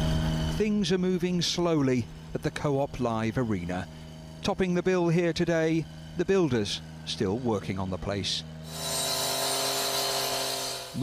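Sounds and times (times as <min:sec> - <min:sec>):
blade hissing in masonry: 0:00.0 - 0:11.0
disc cutter engine running: 0:00.0 - 0:11.0.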